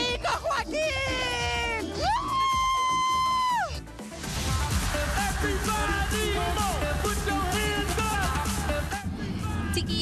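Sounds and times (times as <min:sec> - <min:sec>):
loud club music: 0:00.0 - 0:10.0
woman screaming: 0:00.5 - 0:03.8.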